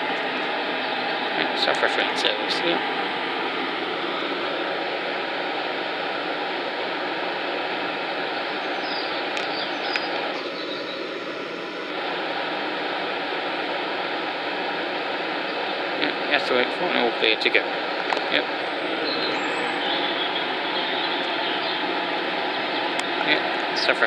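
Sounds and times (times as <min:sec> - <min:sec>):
electric train running noise: 0:00.0 - 0:24.0
train whining tones: 0:18.3 - 0:23.7.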